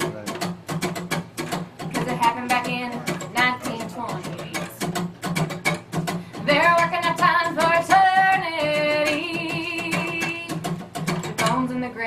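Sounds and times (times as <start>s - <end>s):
strummed acoustic guitar: 0.0s - 12.0s
woman singing: 1.9s - 5.0s, 6.3s - 12.0s.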